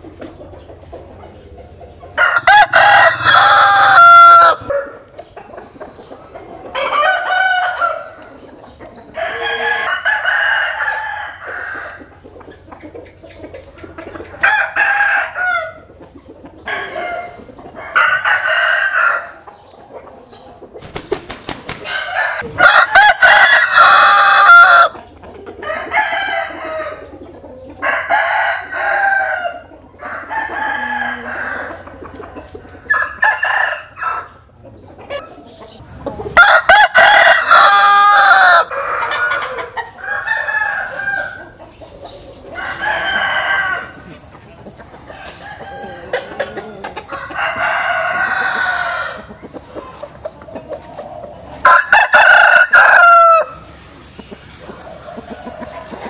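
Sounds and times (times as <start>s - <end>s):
chickens clucking: 0.0s - 56.0s
roosters crowing: 1.9s - 19.7s, 20.8s - 56.0s.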